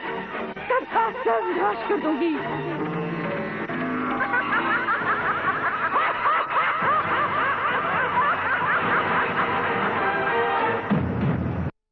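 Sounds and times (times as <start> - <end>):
woman cackling laugh: 4.2 - 9.7.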